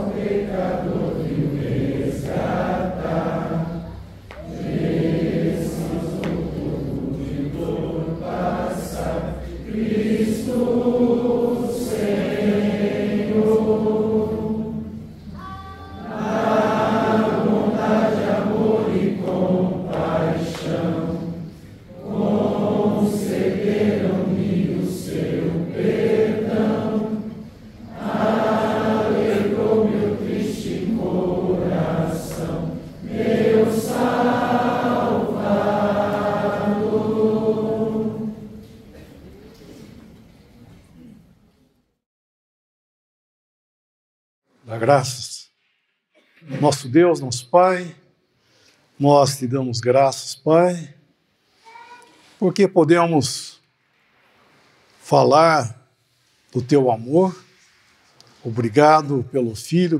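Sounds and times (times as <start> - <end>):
congregation singing a hymn: 0.0 - 39.1
breath: 48.3 - 48.9.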